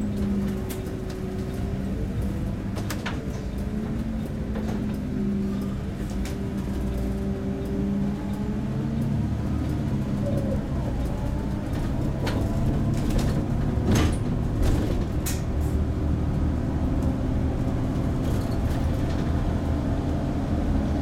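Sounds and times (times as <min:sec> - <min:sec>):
bus engine running: 0:00.0 - 0:21.0.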